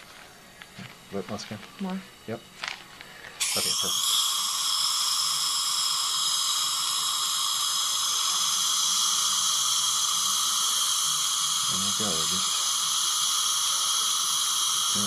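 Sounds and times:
suction tube hiss: 0:03.4 - 0:15.0.

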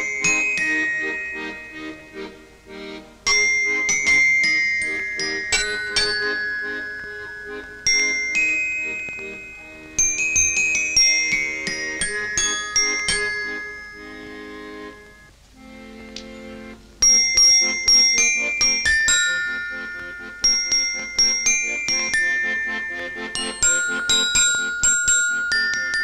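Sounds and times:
glockenspiel melody: 0:00.0 - 0:26.0
low held chord: 0:00.0 - 0:26.0.

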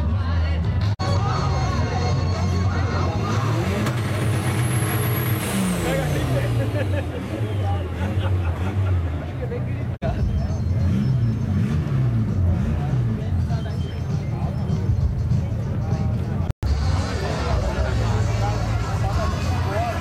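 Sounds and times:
crowd chatter: 0:00.0 - 0:20.0
car engine running: 0:02.6 - 0:20.0.

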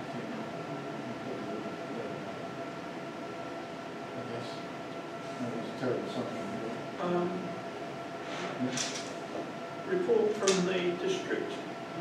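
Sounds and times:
faint constant hum: 0:00.0 - 0:12.0
room tone hiss: 0:00.0 - 0:12.0.

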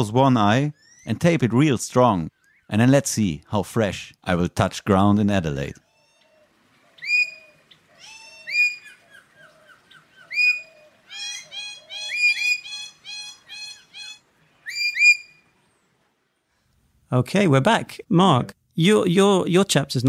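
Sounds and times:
whistled bird chirps: 0:00.7 - 0:01.1, 0:07.0 - 0:16.0
softer lower bird chirps: 0:00.7 - 0:01.2, 0:02.3 - 0:02.8, 0:05.7 - 0:16.8.

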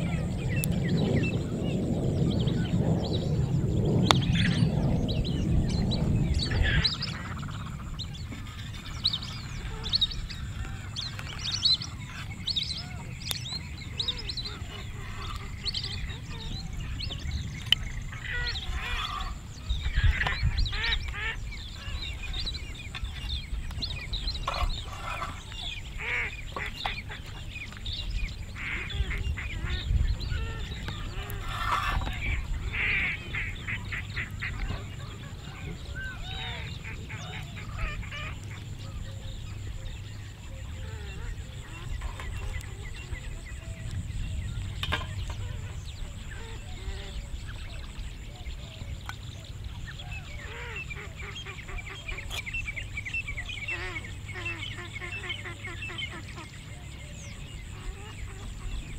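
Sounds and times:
steady low rumble: 0:00.0 - 0:50.4
birds calling: 0:00.0 - 0:58.9.

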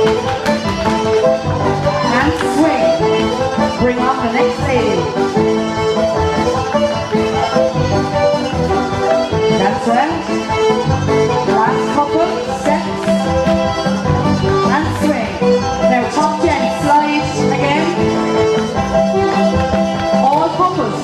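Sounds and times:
traditional dance music band: 0:00.0 - 0:21.0.

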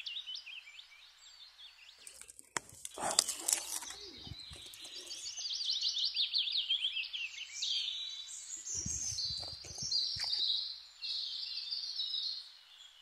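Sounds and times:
songbird chirping: 0:00.0 - 0:13.0.

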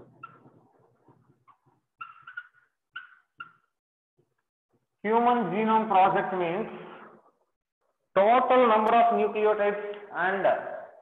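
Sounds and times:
marker squeaking on whiteboard: 0:00.0 - 0:03.8.

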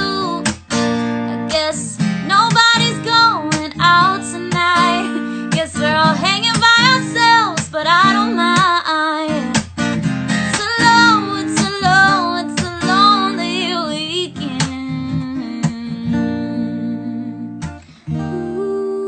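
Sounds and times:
woman singing: 0:00.0 - 0:09.7, 0:10.3 - 0:19.0
acoustic guitar strumming: 0:00.0 - 0:18.7.

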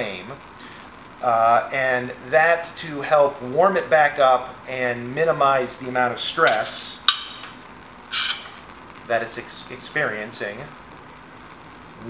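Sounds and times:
tool clinking on bench: 0:06.5 - 0:08.6.

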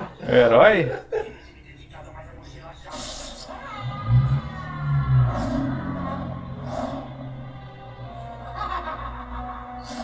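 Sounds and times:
dramatic theme music: 0:03.8 - 0:10.0.

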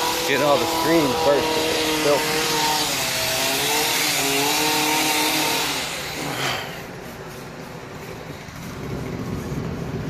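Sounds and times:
motor running with hiss: 0:00.0 - 0:10.0.

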